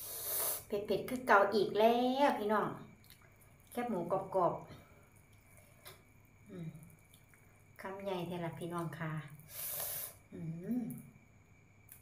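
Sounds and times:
woman speaking: 0.7 - 2.8, 3.8 - 4.7, 7.8 - 9.4, 10.3 - 11.0.

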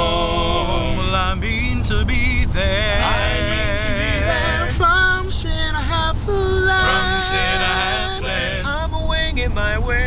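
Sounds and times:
male quartet singing a cappella: 0.0 - 10.0.

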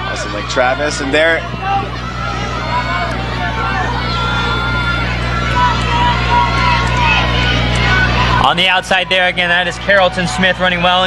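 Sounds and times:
crowd cheering and shouting: 0.0 - 11.0
steady low hum: 0.0 - 11.0.

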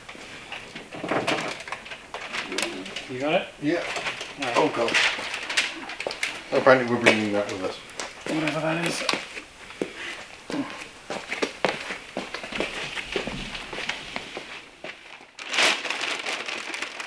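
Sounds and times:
crinkling covering rustling: 0.0 - 17.0.

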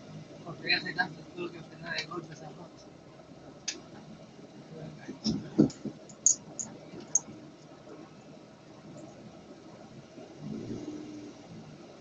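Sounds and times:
low engine hum: 0.0 - 12.0
traffic rumble inside car: 0.0 - 12.0.

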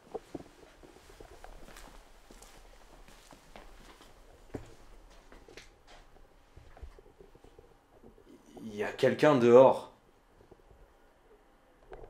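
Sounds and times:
faint irregular footsteps: 0.0 - 8.7.

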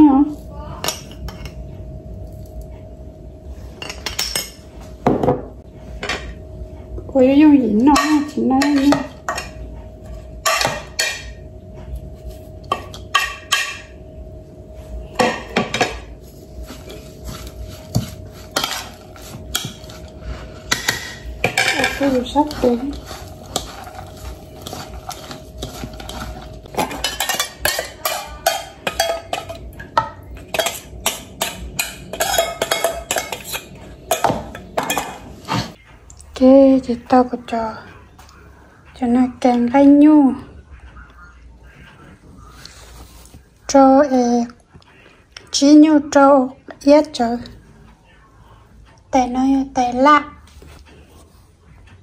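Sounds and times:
metal spoon clinking on glass: 24.6 - 35.2.

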